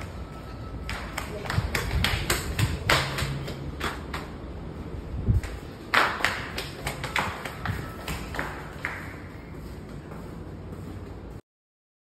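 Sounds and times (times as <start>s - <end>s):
footsteps on tiled floor: 0.0s - 11.4s.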